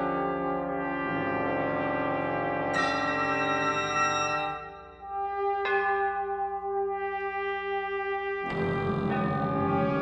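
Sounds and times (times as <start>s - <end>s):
brass holding a steady chord: 0.0s - 10.0s.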